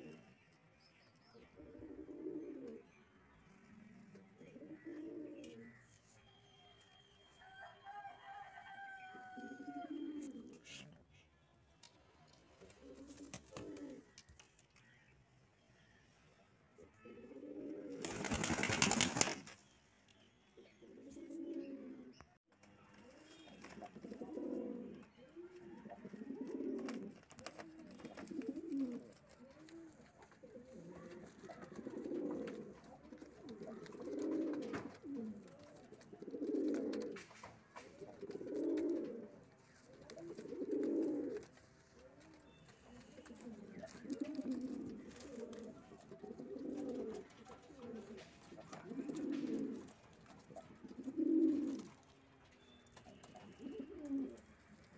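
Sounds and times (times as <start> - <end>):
pigeons cooing: 1.4 - 3.0, 4.0 - 5.9, 9.3 - 10.8, 12.6 - 14.2, 17.0 - 19.2, 20.8 - 22.2, 23.1 - 52.0, 53.0 - 54.8.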